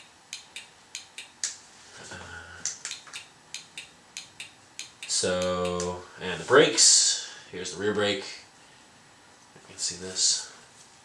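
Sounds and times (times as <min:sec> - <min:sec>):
turn signal relay clicking: 0:02.7 - 0:05.9.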